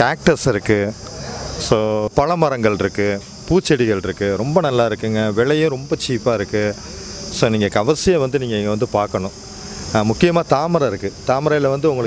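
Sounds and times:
high-pitched insect drone: 0:00.0 - 0:12.0
man talking: 0:00.0 - 0:12.0.

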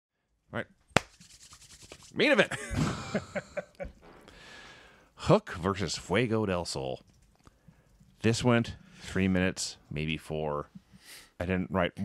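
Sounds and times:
hands rubbing together: 0:00.9 - 0:02.4
man speaking: 0:02.1 - 0:02.6, 0:05.2 - 0:07.0, 0:08.2 - 0:12.0.

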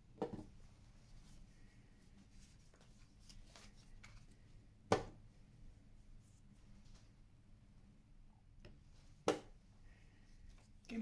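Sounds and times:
paper cards rustling: 0:02.5 - 0:04.5.

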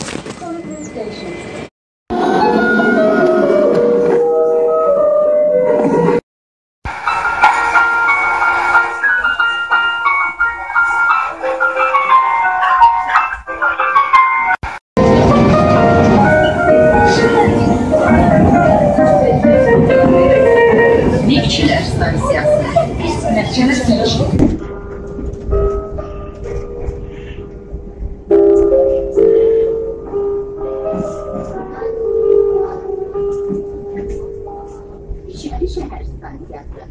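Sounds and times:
metro train rumble: 0:00.4 - 0:06.2, 0:06.9 - 0:36.9
chime-like melody: 0:07.1 - 0:14.6.

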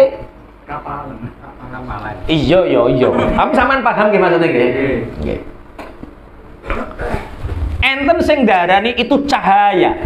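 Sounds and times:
low rumble: 0:07.4 - 0:08.5.

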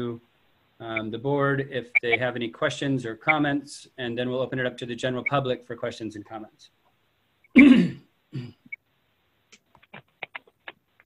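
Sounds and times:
person coughing: 0:07.6 - 0:08.6.

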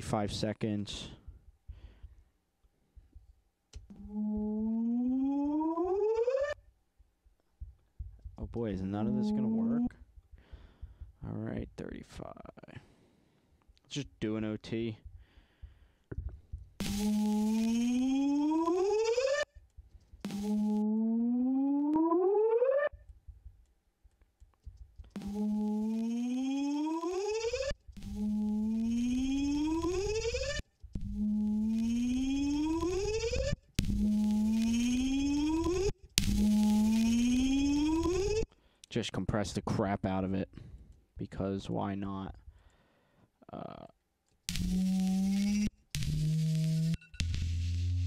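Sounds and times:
synthesized tone gliding upward: 0:09.0 - 0:09.9, 0:16.8 - 0:19.4, 0:20.3 - 0:22.9, 0:25.2 - 0:38.5.

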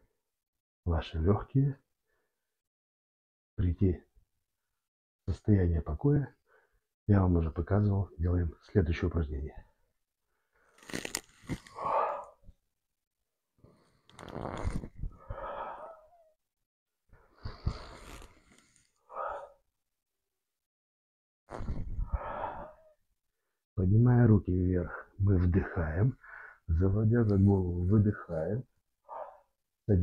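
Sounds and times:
microphone creaking and crackling: 0:10.8 - 0:11.8, 0:14.1 - 0:15.2, 0:21.5 - 0:22.2
breath drawn in: 0:13.6 - 0:16.1, 0:17.4 - 0:19.6
man speaking: 0:23.8 - 0:28.6.

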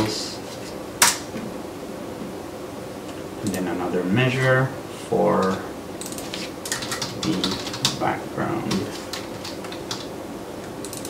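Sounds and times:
low hiss of microphone noise: 0:00.0 - 0:11.0.

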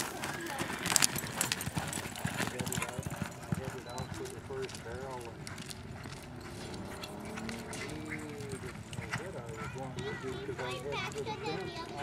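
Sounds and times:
horse hoofbeats galloping on dirt: 0:00.0 - 0:12.0
people calling out: 0:06.7 - 0:12.0.

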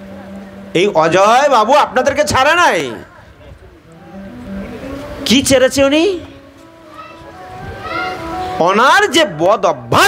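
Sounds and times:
faint voices: 0:00.0 - 0:10.0.

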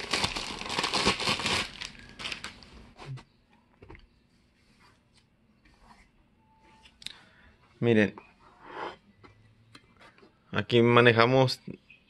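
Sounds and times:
plastic bag crinkling: 0:00.0 - 0:02.7.

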